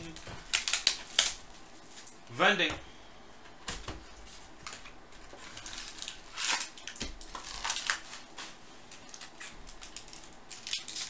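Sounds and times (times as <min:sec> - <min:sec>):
foil packs crinkling: 0:00.0 - 0:02.2, 0:03.7 - 0:11.0.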